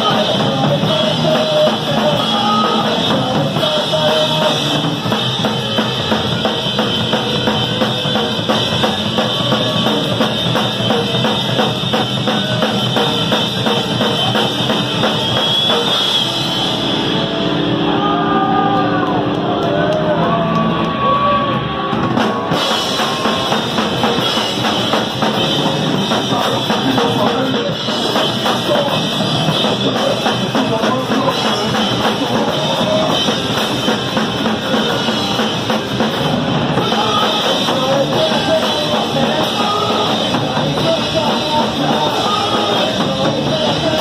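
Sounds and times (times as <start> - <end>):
fast drumming with cymbals: 0.0 - 17.2, 21.9 - 44.0
bass guitar: 0.0 - 44.0
distorted guitar: 0.0 - 44.0.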